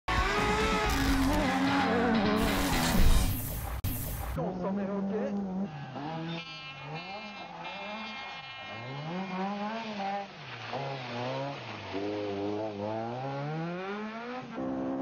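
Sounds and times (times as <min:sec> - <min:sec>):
rally car engine revving: 0:00.1 - 0:15.0.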